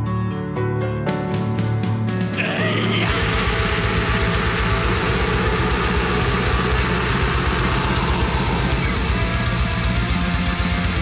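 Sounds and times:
guitars: 0:00.0 - 0:11.0
extreme metal song: 0:02.1 - 0:11.0
double-bass kick drum runs: 0:02.4 - 0:11.0.

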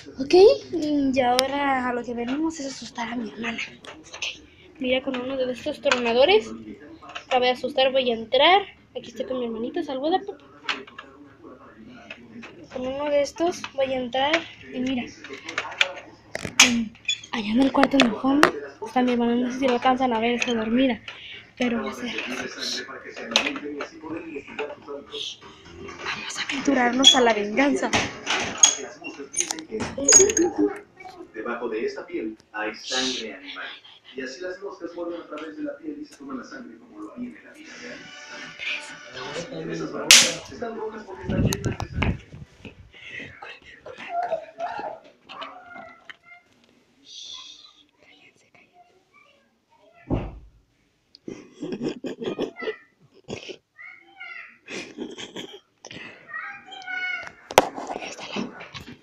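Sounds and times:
indistinct voices: 0:19.6 - 0:31.4
girl giggling: 0:51.3 - 0:53.6, 0:54.6 - 0:56.1.

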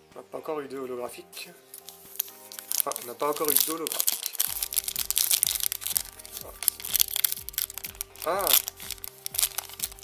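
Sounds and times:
background music: 0:00.0 - 0:10.0
foil wrapper crinkling and tearing: 0:01.7 - 0:10.0.

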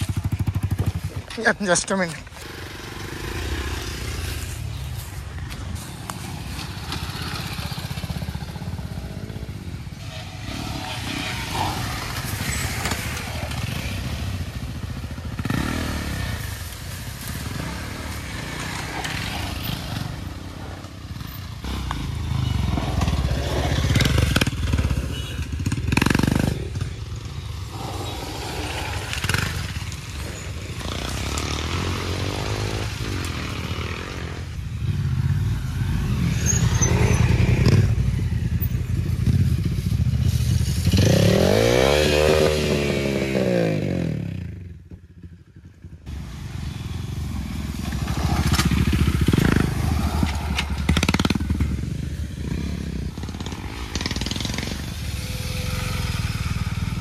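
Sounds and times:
off-road motorcycles revving: 0:00.0 - 0:57.0.

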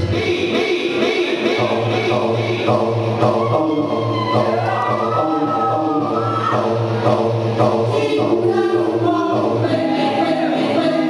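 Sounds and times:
choir-like sampled voices: 0:00.0 - 0:11.0.

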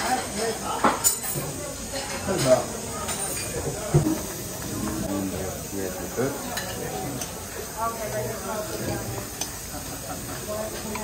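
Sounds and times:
food sizzling: 0:00.0 - 0:11.0.

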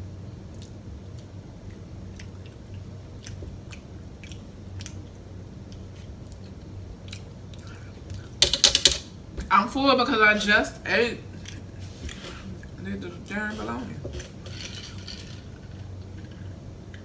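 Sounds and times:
low steady hum: 0:00.0 - 0:17.0
person chewing food: 0:00.4 - 0:08.4.

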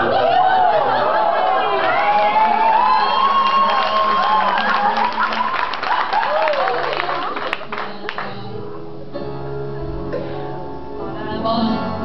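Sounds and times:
crowd cheering: 0:00.0 - 0:08.3
people clapping: 0:00.7 - 0:08.5.

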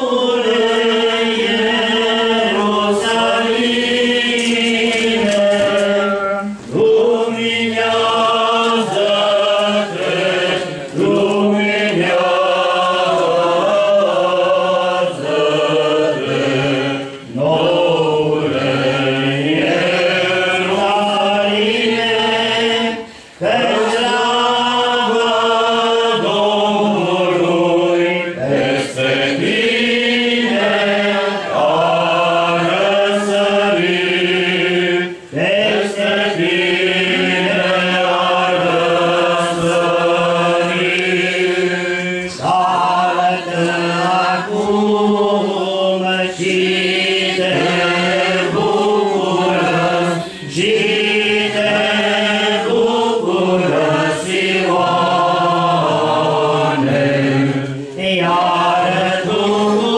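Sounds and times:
voices chanting a hymn: 0:00.0 - 0:59.9.

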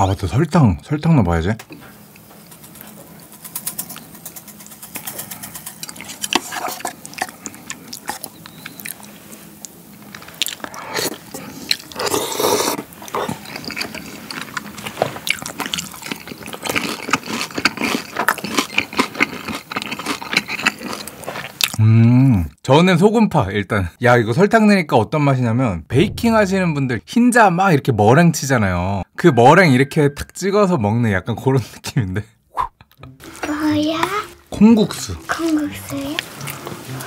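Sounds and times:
wet mouth and chewing sounds: 0:02.2 - 0:21.8
slurping noodles: 0:10.6 - 0:14.3.

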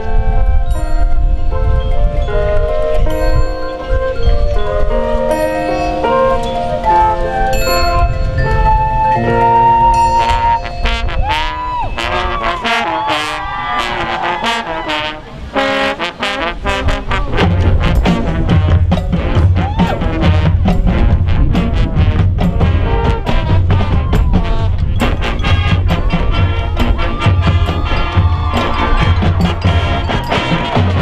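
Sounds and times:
marching band playing: 0:00.0 - 0:31.0
low drum beat: 0:17.1 - 0:31.0.

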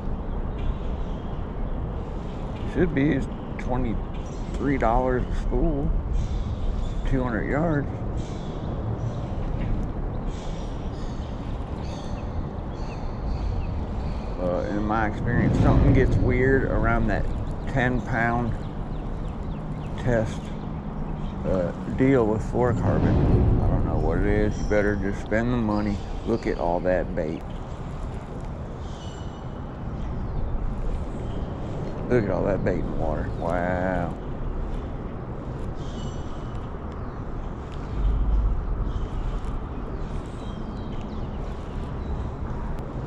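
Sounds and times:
steady low rumble: 0:00.0 - 0:43.0.

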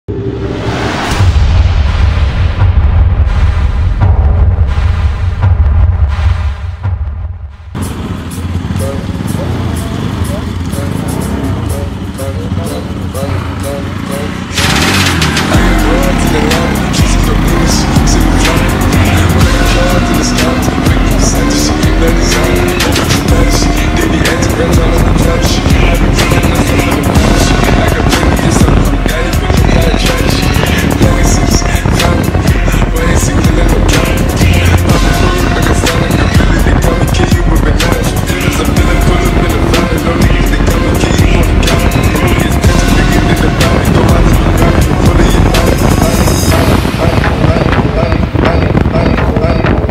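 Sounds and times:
music with a beat: 0:06.6 - 0:49.9
motorcycle engine accelerating: 0:06.9 - 0:49.9.

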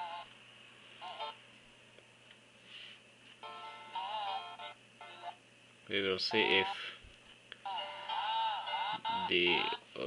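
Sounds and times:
soundtrack music from small speaker: 0:01.0 - 0:01.4, 0:03.4 - 0:05.4, 0:07.6 - 0:09.8.

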